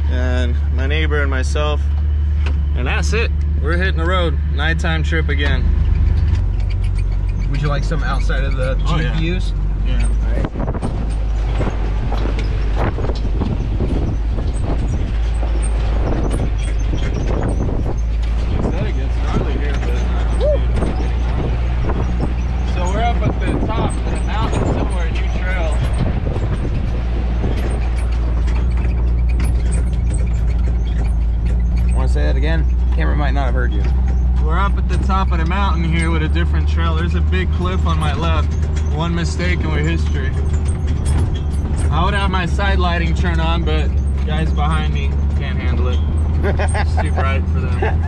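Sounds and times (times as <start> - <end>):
body and suspension rattling: 0.0 - 48.0
vehicle engine running: 0.0 - 48.0
faint voices: 18.6 - 21.5.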